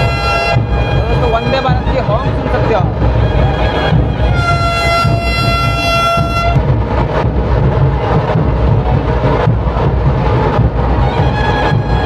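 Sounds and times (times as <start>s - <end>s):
train horn blast: 0.0s - 1.8s, 3.2s - 6.7s.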